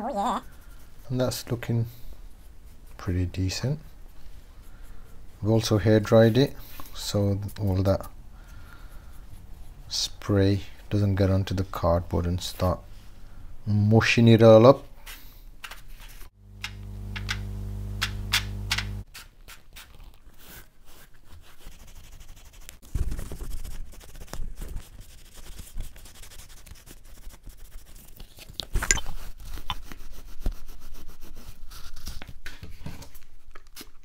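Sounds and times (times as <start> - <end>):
small motor humming: 16.5 - 19.0.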